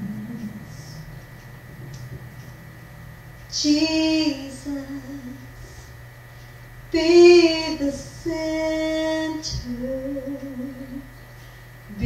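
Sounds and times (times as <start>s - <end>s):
woman singing unaccompanied: 0.0s - 1.1s, 3.5s - 5.7s, 6.9s - 11.2s
steady low hum: 0.0s - 12.0s.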